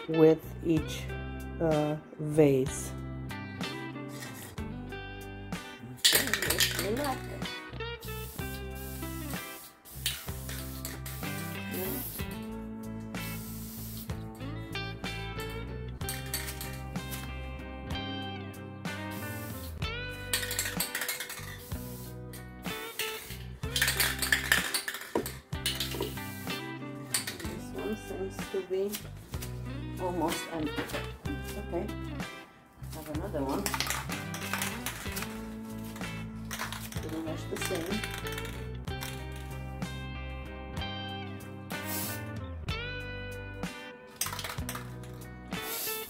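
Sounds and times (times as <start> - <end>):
background music: 0.0 - 46.0
aerosol spray hissing: 6.1 - 12.5, 13.2 - 14.3, 19.0 - 28.0, 41.7 - 42.4, 45.5 - 46.0.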